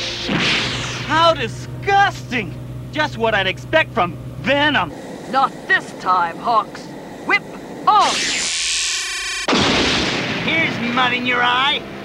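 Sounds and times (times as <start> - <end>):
electronic power-up tone: 7.9 - 9.7
blast and shattering debris: 9.5 - 10.8.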